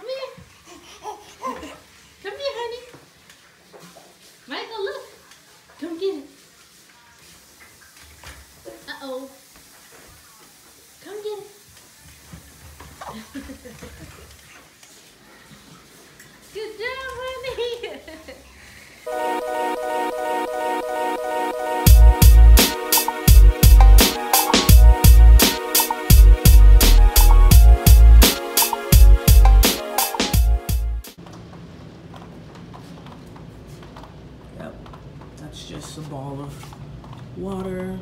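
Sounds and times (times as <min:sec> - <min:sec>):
baby babbling: 0:00.6 - 0:01.9.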